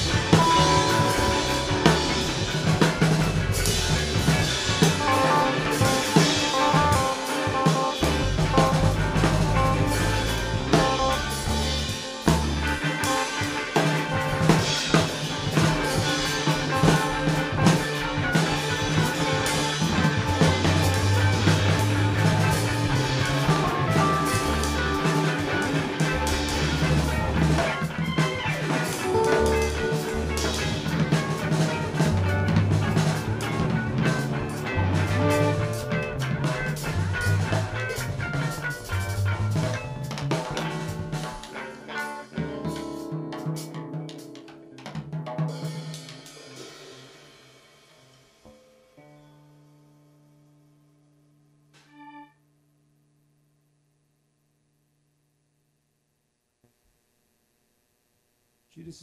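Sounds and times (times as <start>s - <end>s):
snare and bass drum strokes: 0.0s - 47.3s
live rock band playing: 0.0s - 48.0s.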